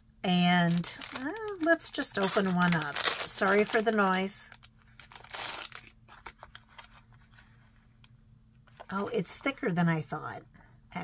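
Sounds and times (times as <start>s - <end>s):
faint steady hum: 0.0s - 11.0s
plastic packaging crinkling: 0.4s - 7.3s.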